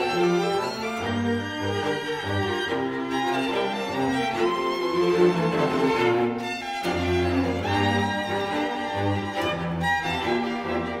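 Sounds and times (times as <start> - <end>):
cello low notes: 0.0 - 11.0
string ensemble playing: 0.0 - 11.0.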